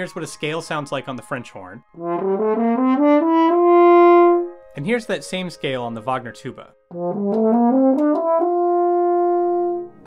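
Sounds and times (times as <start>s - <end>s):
tuba playing ascending scale: 0.0s - 10.0s.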